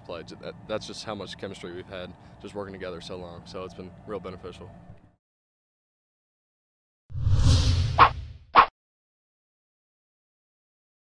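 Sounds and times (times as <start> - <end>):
deep rumbling whoosh: 7.1 - 8.4.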